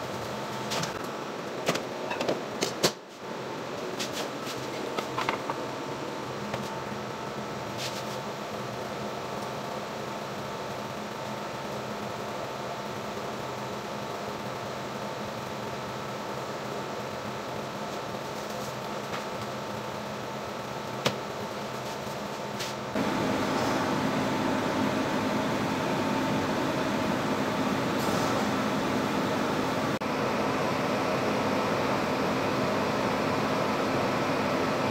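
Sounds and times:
ventilation fan humming: 0.0s - 34.9s.

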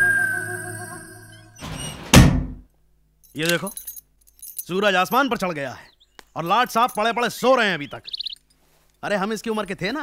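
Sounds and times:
background music: 0.0s - 1.8s
door banging thud: 1.6s - 2.6s
wooden door scraping open: 1.6s - 2.6s.

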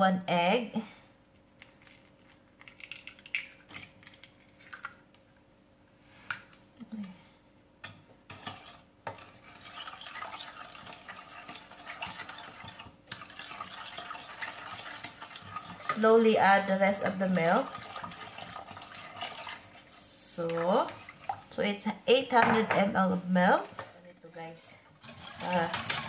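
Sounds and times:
wooden spoon stirring liquid: 7.8s - 24.1s, 24.7s - 26.0s.

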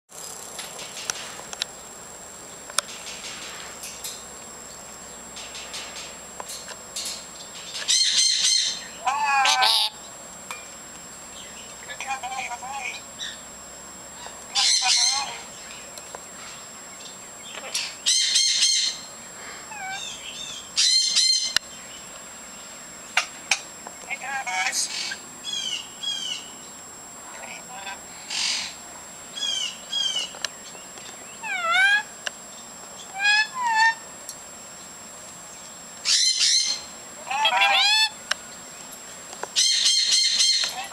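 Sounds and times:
harsh parrot calls: 7.9s - 10.0s, 14.2s - 15.5s, 17.6s - 19.1s, 19.7s - 21.6s, 27.3s - 28.8s, 31.4s - 32.1s, 33.1s - 34.0s, 36.0s - 38.2s, 39.6s - 40.9s
lories chattering: 14.2s - 16.3s.

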